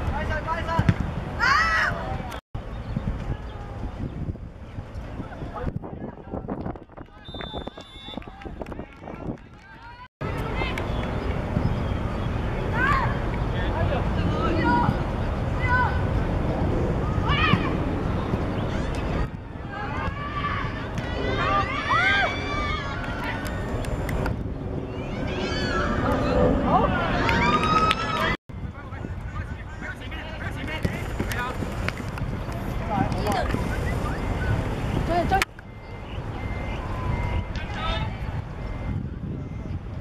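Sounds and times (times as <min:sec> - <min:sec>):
people shouting outdoors: 0:01.4 - 0:02.3, 0:15.6 - 0:16.1, 0:19.6 - 0:23.4.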